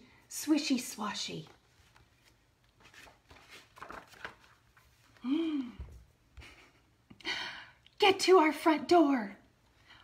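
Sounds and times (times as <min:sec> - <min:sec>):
book pages rustling: 0:01.2 - 0:05.2.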